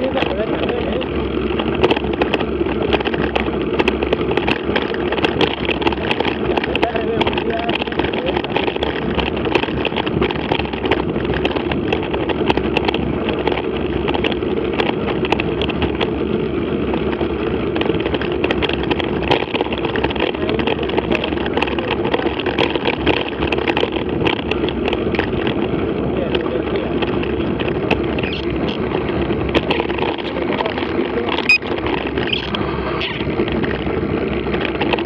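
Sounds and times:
bike tyres rumbling on gravel: 0.0 - 35.0
small clicks and rattles: 0.0 - 35.0.

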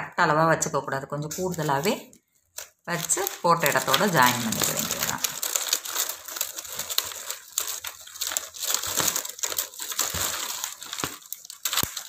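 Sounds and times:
plastic strips crinkling: 1.2 - 12.0.

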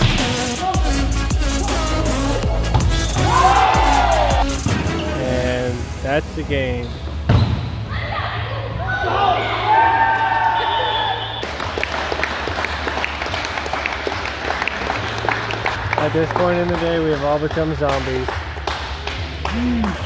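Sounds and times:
players shouting: 3.1 - 4.4
hand claps: 11.4 - 20.0.

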